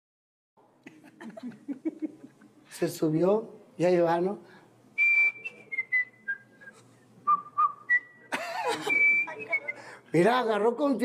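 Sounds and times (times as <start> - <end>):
man whistling a tune: 5.0 - 9.8.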